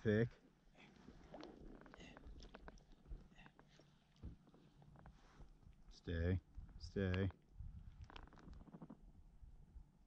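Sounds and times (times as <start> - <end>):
faint clicks and ticks: 0.9 - 9.2.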